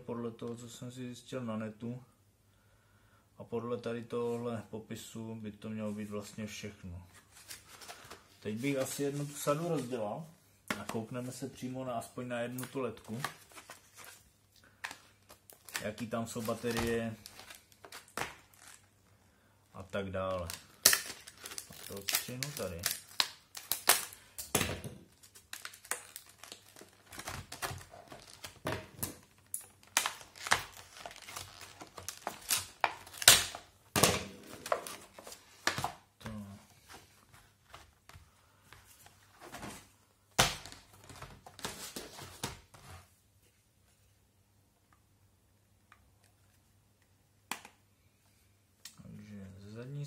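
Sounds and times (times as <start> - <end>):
stiff plastic crinkling and snapping: 12.6 - 18.9, 19.8 - 36.4.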